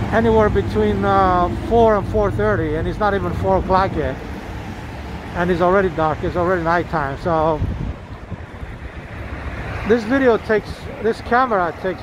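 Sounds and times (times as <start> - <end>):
car passing: 0.0 - 12.0
wind rumble on microphone: 0.0 - 12.0.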